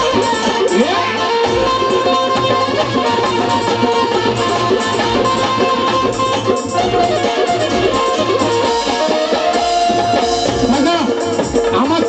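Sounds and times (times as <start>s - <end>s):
hand drums: 0.0s - 12.0s
harmonium held notes: 0.0s - 12.0s
plucked banjo melody: 0.0s - 12.0s.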